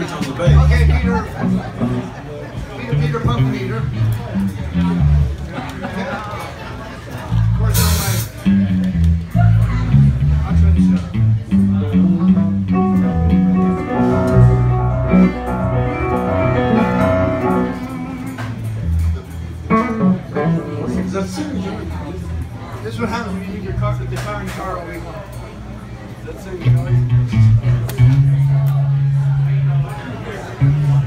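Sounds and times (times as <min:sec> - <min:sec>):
room chatter: 0:00.0 - 0:31.0
electric bass guitar riff: 0:00.5 - 0:02.1, 0:02.9 - 0:05.6, 0:07.4 - 0:22.0, 0:26.6 - 0:29.9, 0:30.6 - 0:31.0.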